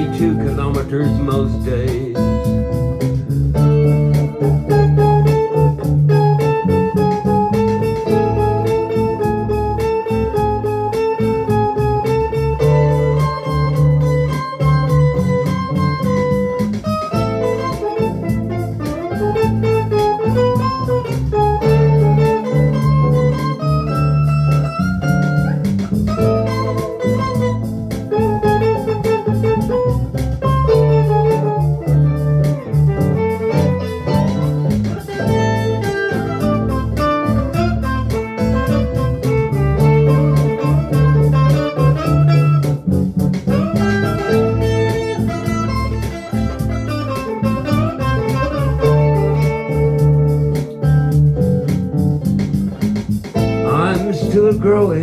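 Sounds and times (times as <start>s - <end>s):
electric guitar playing: 0.0s - 55.0s.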